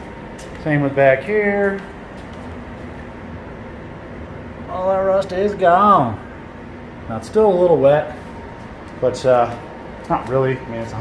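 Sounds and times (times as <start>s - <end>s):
mechanical hum: 0.0s - 11.0s.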